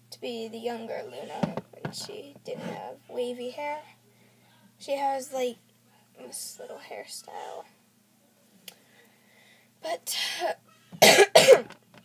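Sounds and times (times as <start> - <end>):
girl coughing: 10.1 - 11.7.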